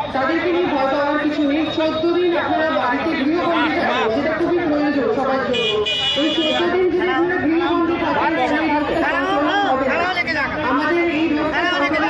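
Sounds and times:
chatter of people: 0.0s - 12.0s.

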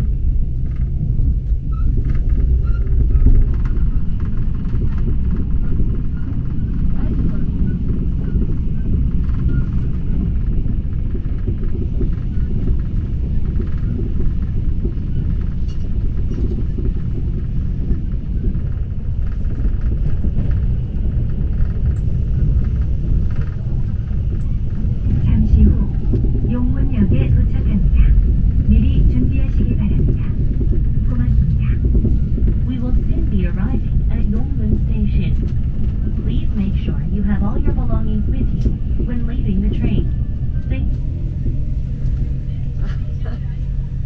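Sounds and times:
train rumbling from inside carriage: 0.0s - 44.0s.

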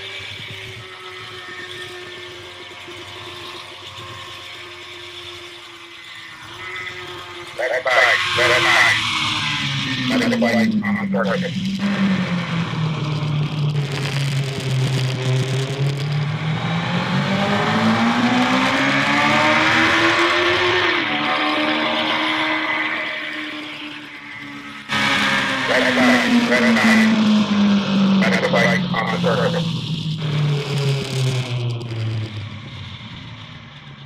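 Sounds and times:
racing motorcycle engine revving: 0.0s - 34.0s
engine note falling in pitch: 19.2s - 31.0s.

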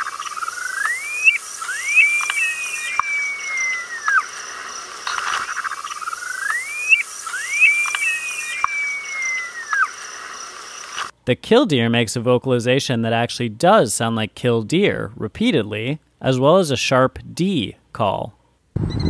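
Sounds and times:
sandpiper whistling song: 0.0s - 4.4s, 6.3s - 9.9s.

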